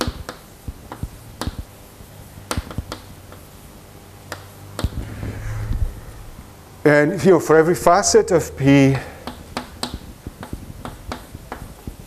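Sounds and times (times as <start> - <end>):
chalk tapping and scraping on blackboard: 9.2 - 12.0.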